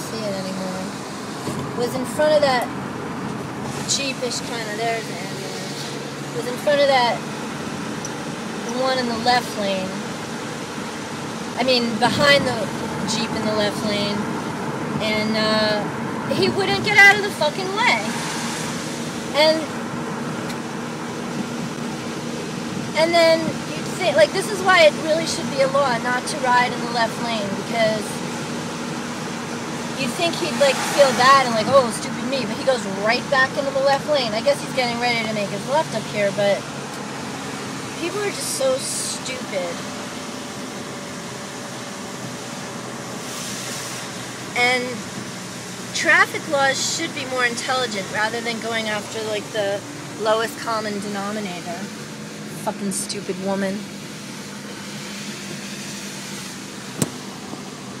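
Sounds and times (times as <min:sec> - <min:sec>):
low engine hum: 0:00.0 - 0:58.0
road noise inside car cabin: 0:00.0 - 0:58.0
tyres hissing on wet road: 0:17.6 - 0:19.8, 0:27.5 - 0:52.6, 0:53.9 - 0:58.0.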